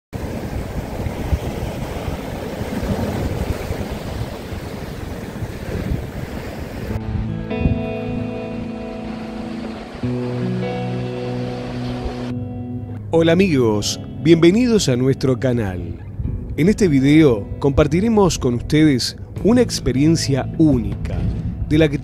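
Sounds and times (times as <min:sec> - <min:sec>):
ocean waves breaking on beach: 0:00.1 - 0:12.4
music with long held chords: 0:06.8 - 0:22.0.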